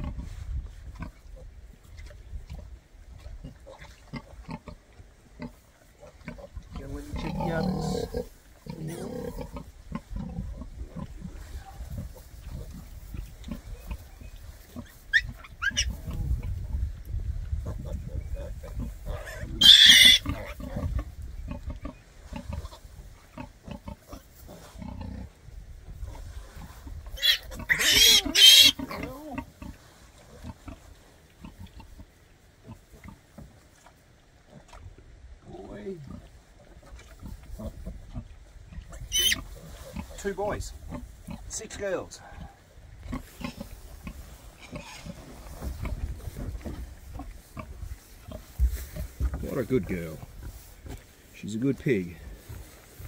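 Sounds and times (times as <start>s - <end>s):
piglets squealing shrilly: 15.1s - 16.0s, 19.2s - 20.6s, 27.2s - 29.1s, 39.1s - 39.5s
straw rustling: 42.6s - 53.0s.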